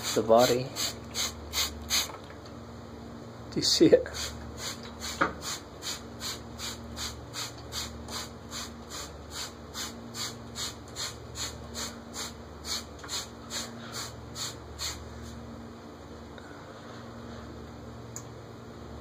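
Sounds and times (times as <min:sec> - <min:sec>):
low steady hum: 0:00.0 - 0:19.0.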